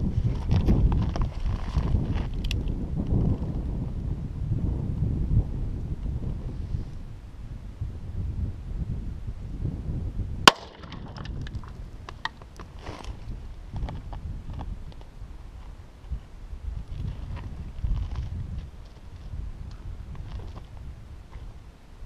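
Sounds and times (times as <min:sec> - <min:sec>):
wind noise on microphone: 0:00.0 - 0:22.0
revolver gunshot: 0:10.5 - 0:10.9.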